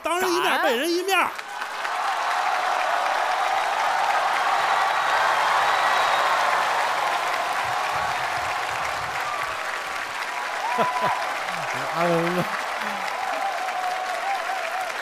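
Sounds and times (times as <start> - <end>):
audience applauding and cheering: 0.0 - 15.0.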